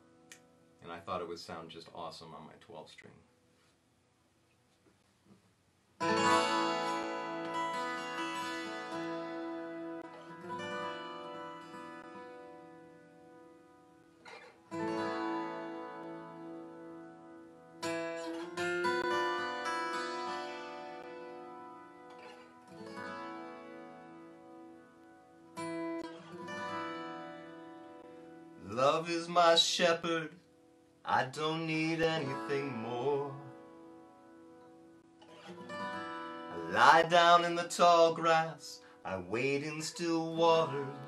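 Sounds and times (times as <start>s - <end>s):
acoustic guitar chords: 6.0s - 41.0s.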